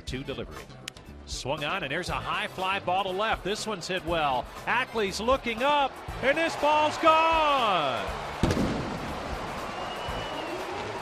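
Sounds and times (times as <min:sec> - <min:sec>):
ballpark crowd noise: 0:03.8 - 0:11.0.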